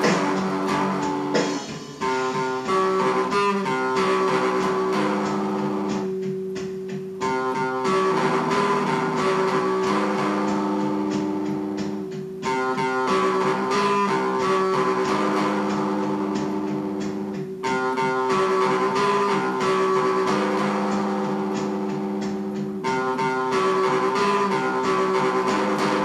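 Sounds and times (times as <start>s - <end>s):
electric guitar ringing chords: 0.0s - 26.0s.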